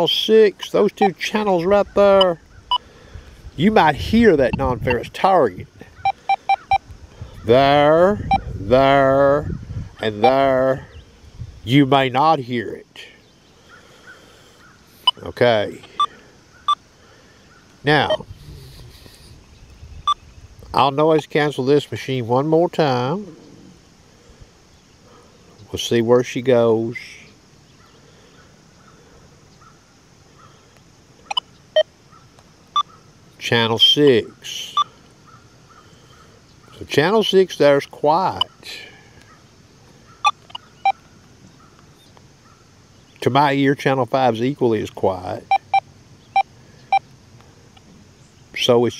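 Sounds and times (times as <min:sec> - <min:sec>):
keypad beeping: 0:00.6 - 0:01.2, 0:06.0 - 0:06.8, 0:18.0 - 0:18.2, 0:45.5 - 0:45.8
metal detector beeps: 0:00.6 - 0:01.3, 0:02.1 - 0:02.8, 0:04.4 - 0:05.1, 0:06.0 - 0:06.8, 0:08.2 - 0:08.5, 0:10.1 - 0:10.5, 0:15.0 - 0:15.3, 0:15.9 - 0:16.1, 0:18.0 - 0:18.3, 0:40.2 - 0:41.0, 0:45.5 - 0:47.0.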